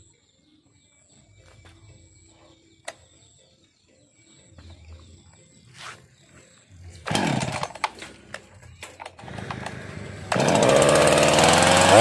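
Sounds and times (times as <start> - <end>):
chainsaw starting and running: 7.0 - 8.2, 9.1 - 12.0.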